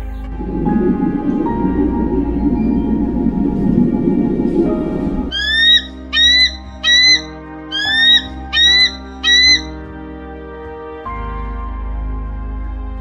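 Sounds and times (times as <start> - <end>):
background music: 0.0 - 13.0
bird squawking: 5.3 - 9.7.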